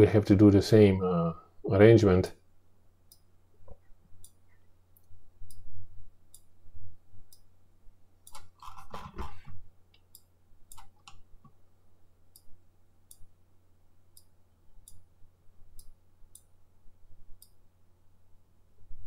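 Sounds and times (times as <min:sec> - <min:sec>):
faint low hum: 0:00.0 - 0:19.0
computer mouse clicking: 0:08.2 - 0:09.4, 0:10.0 - 0:11.6.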